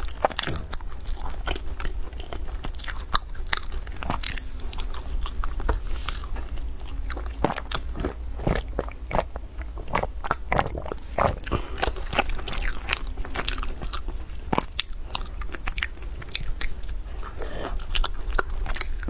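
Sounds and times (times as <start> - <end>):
biting and chewing pastry: 0.0 - 19.0.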